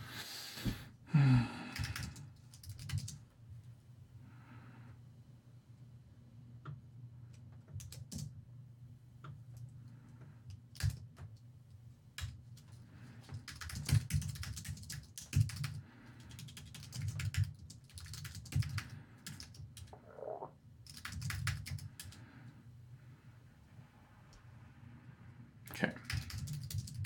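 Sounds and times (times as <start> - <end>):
typing on computer keyboard: 1.7 - 3.2, 7.7 - 8.4, 10.5 - 11.4, 12.2 - 19.9, 20.8 - 22.2, 26.0 - 27.0.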